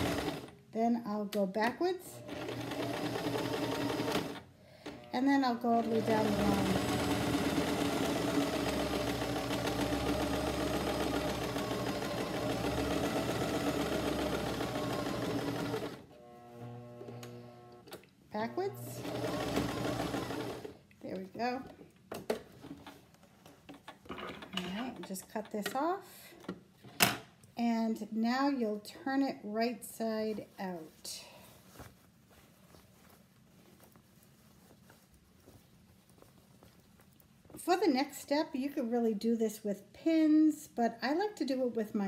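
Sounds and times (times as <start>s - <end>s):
sewing machine running: 0.0s - 0.5s, 2.1s - 5.2s, 5.8s - 17.7s, 18.6s - 20.8s.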